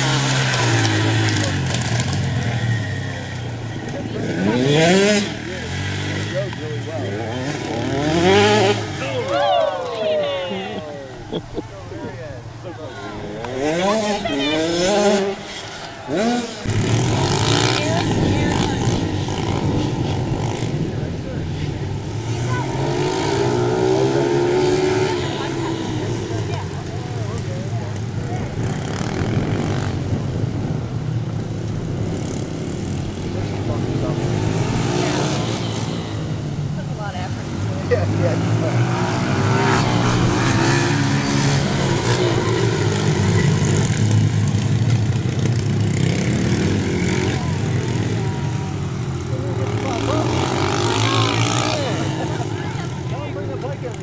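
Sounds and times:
dirt bike engines racing: 0.0 - 54.0.

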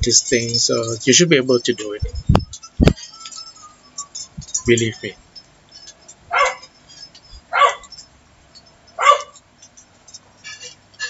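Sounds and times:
dog barking: 6.3 - 6.7, 7.5 - 7.9, 9.0 - 9.4.

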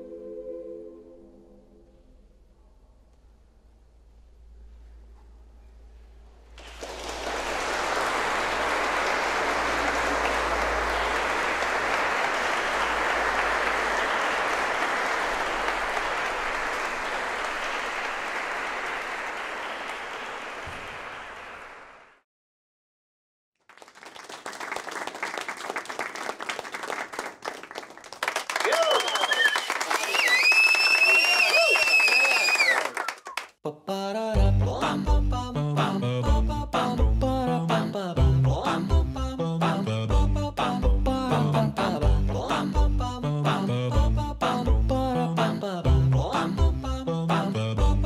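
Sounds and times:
audience applauding: 6.6 - 22.2, 23.6 - 33.6.

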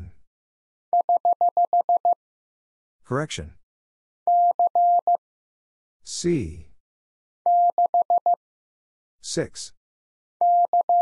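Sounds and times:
morse code beeps: 1.0 - 2.2, 4.3 - 5.2, 7.5 - 8.4, 10.4 - 11.0.

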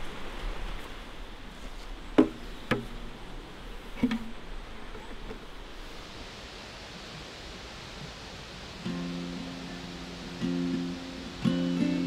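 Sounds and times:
outdoor ambience hiss: 0.0 - 12.0
acoustic guitar strummed: 8.8 - 12.0.

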